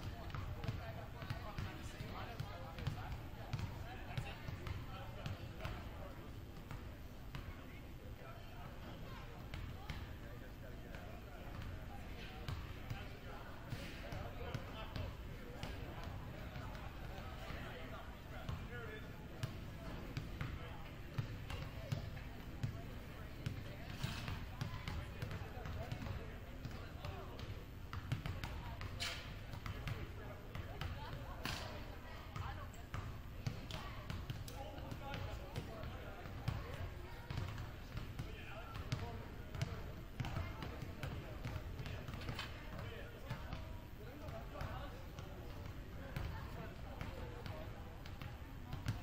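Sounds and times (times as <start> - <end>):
background chatter: 0.0 - 49.0
basketballs bouncing on wooden floor: 28.0 - 28.8, 32.9 - 37.6, 38.2 - 42.8.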